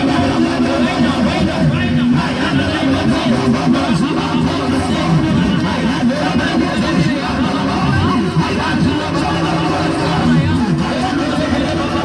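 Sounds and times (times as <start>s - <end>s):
church music over sound system: 0.0s - 12.0s
many voices overlapping: 0.0s - 12.0s.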